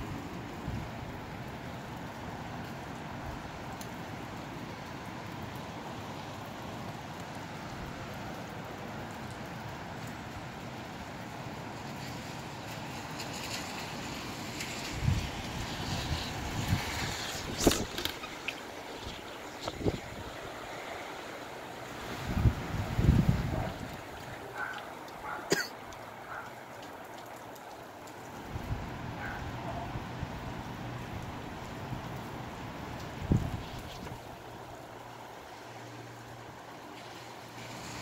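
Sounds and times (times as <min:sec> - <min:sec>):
rain: 0:00.0 - 0:38.0
gusty wind: 0:13.2 - 0:25.4, 0:28.4 - 0:35.6
wind buffeting microphone: 0:14.6 - 0:20.7, 0:22.0 - 0:24.7, 0:33.1 - 0:34.4.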